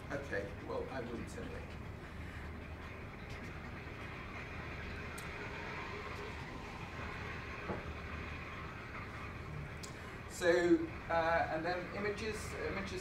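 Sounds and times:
low hum: 0.0s - 13.0s
water rushing through pipes: 3.9s - 13.0s.

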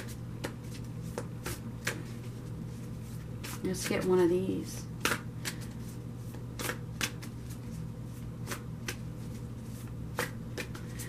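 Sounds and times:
cards being shuffled: 0.0s - 4.0s, 5.0s - 11.0s
steady low hum: 0.0s - 11.0s.

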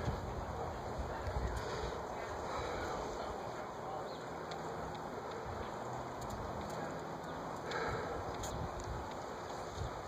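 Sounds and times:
faint clicks: 4.2s - 10.0s.

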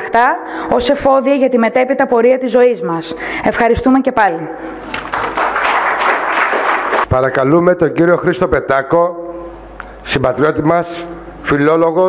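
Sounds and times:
audience applauding: 4.8s - 7.1s.

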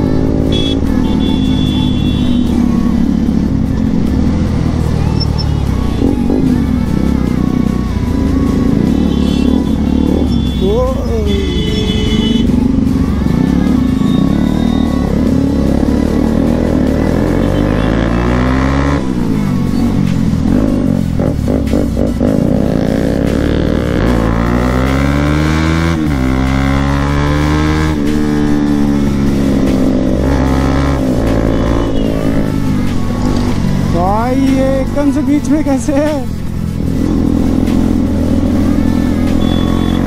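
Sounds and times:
motorcycle engine revving: 0.0s - 40.0s.

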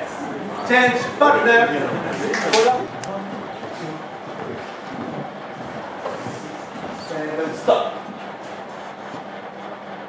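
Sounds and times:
feet shuffling on wooden floor: 2.9s - 9.3s.

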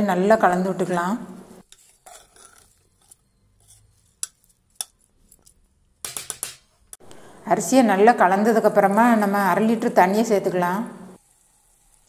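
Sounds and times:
spoon scraping pressure cooker: 1.7s - 4.5s.

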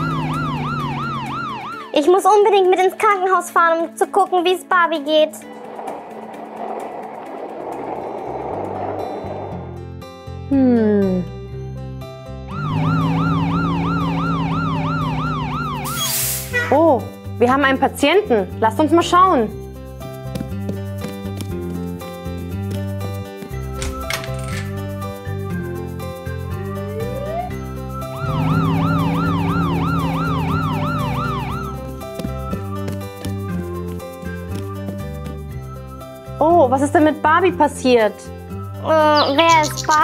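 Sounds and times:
toy ambulance siren wailing: 0.0s - 1.9s, 12.5s - 16.1s, 26.6s - 31.9s
background music: 0.0s - 40.0s.

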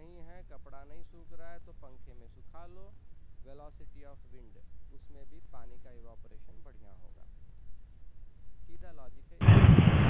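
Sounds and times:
loud burst of rushing noise: 9.4s - 10.0s.

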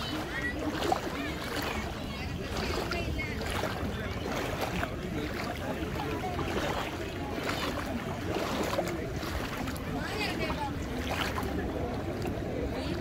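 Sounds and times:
indistinct chatter of voices: 0.0s - 13.0s
lapping water: 0.0s - 13.0s
wind: 0.0s - 13.0s.

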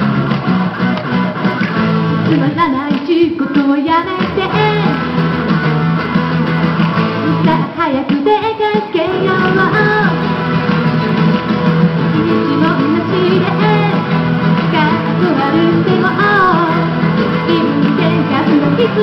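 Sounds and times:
guitar accompaniment: 0.0s - 19.0s
woman singing into microphone: 2.2s - 5.0s, 7.2s - 10.2s, 12.2s - 19.0s.

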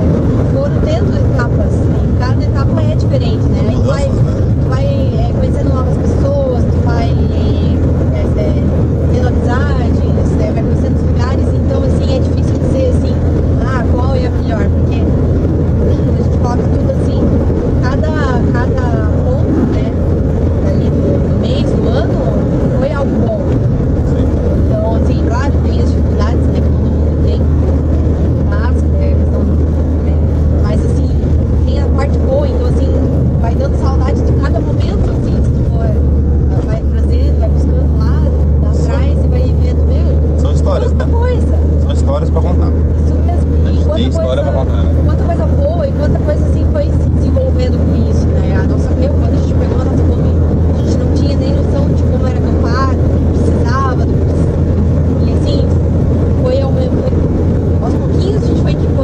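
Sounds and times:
van engine and tyres rumbling: 0.0s - 59.0s
voices talking: 0.0s - 59.0s.

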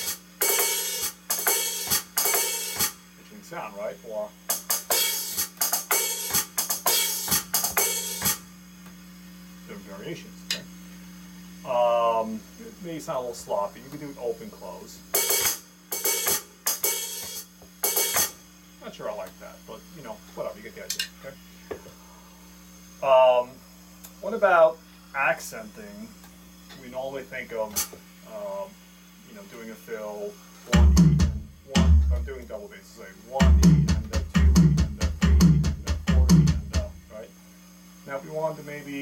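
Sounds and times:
electronic hi-hat pattern: 0.0s - 3.1s, 4.3s - 8.5s, 15.1s - 18.5s, 30.7s - 37.1s
electrical mains hum: 0.0s - 39.0s.

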